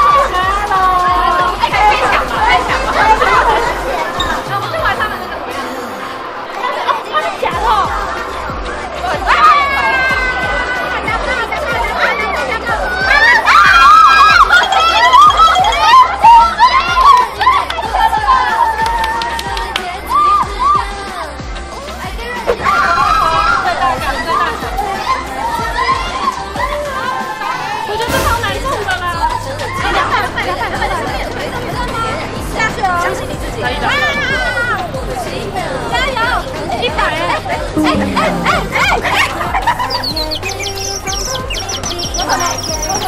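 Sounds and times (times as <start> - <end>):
background music: 0.0 - 43.0
women talking excitedly: 0.0 - 43.0
excited women's voices: 22.2 - 30.1.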